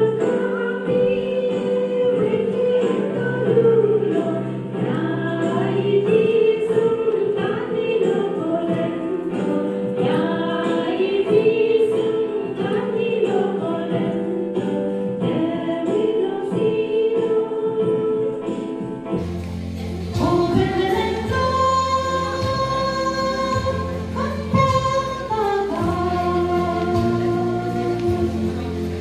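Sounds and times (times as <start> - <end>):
women singing into microphone: 0.0 - 18.8, 19.7 - 29.0
low backing notes: 18.3 - 29.0
women singing gospel song: 20.0 - 28.8.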